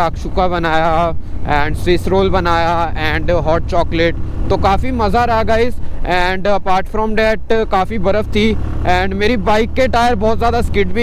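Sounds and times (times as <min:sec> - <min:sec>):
man talking: 0:00.0 - 0:11.0
motorcycle engine droning: 0:00.0 - 0:11.0.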